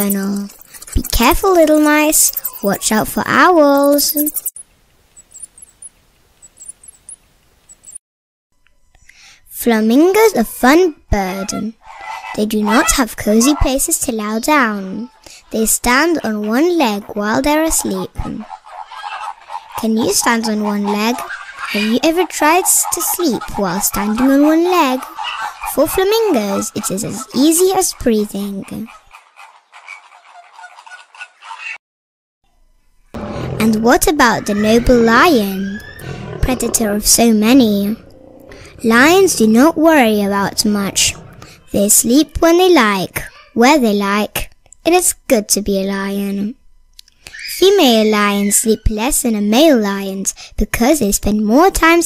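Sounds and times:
small rodent squeaking: 0.0 - 4.6, 5.2 - 8.0
flamingos calling: 17.6 - 31.8, 33.6 - 41.8.

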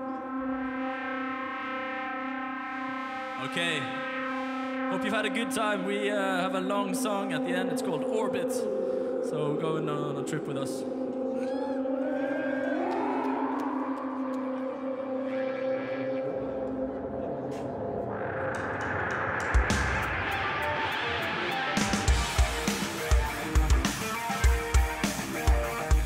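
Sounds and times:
electric guitar sustained notes: 0.0 - 26.0
drum kit beat: 21.5 - 26.0.

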